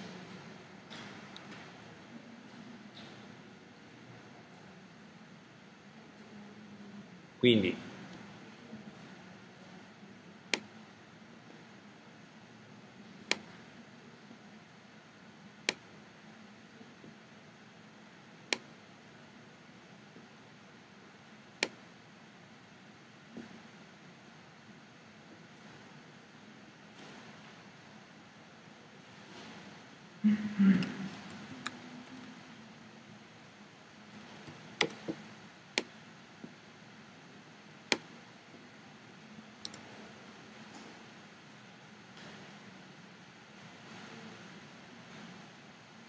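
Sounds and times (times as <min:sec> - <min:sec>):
mouse and keyboard clicks: 0:34.4 - 0:35.2.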